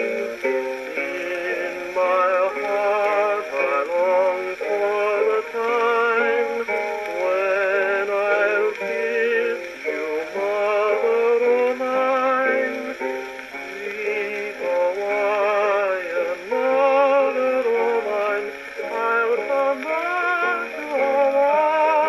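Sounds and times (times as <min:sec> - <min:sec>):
man singing with vibrato: 0:00.0 - 0:22.0
plucked string accompaniment: 0:00.0 - 0:22.0.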